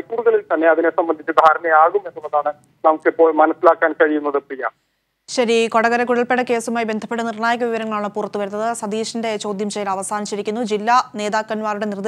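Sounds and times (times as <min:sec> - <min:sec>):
news reader speaking: 0:00.0 - 0:12.0.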